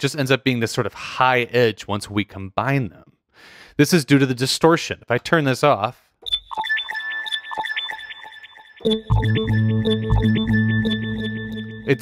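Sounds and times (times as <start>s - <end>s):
bell-like synth arpeggio: 6.2s - 12.0s
held high synth tones: 6.2s - 12.0s.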